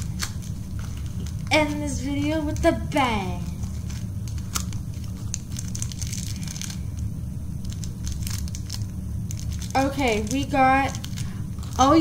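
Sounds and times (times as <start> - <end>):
plastic packaging crinkling: 0.0 - 12.0
steady low hum: 0.0 - 12.0.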